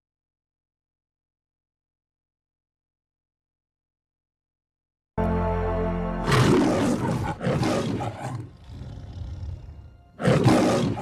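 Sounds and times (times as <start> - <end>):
held music chord: 5.2 - 7.4
lion growling: 6.2 - 11.0
lion roaring: 6.2 - 11.0.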